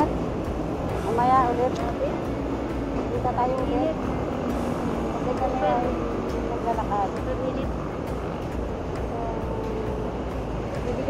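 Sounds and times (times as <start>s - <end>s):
city road traffic rumble: 0.0s - 11.0s.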